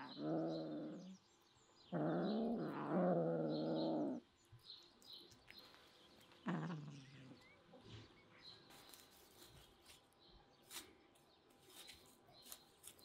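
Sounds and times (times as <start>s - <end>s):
birds chirping faintly: 0.0s - 13.0s.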